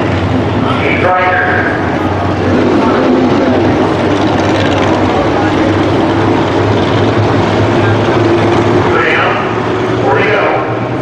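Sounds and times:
race car engines droning: 0.0s - 11.0s.

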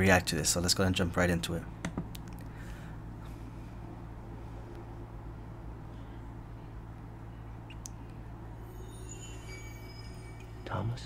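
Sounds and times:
steady low hum: 0.0s - 11.0s
faint high thin tones: 8.1s - 11.0s.

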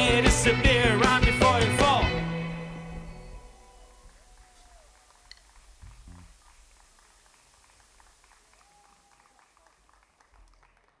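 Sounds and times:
faint low hum: 2.8s - 11.0s.

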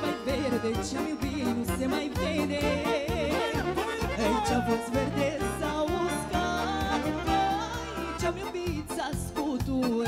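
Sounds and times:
bass and drum beat: 0.0s - 10.0s
keyboard lead melody with vibrato: 0.0s - 10.0s.

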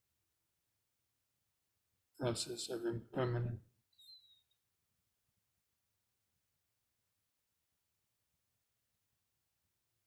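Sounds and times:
faint high chirp: 3.9s - 4.6s.

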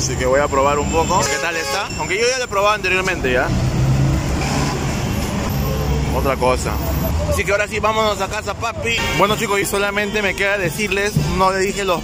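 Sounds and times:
heavy vehicle engine rumble: 0.0s - 8.9s.

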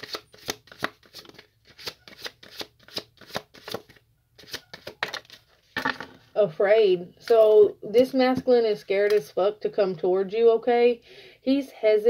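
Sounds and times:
cards being shuffled: 0.0s - 6.2s.

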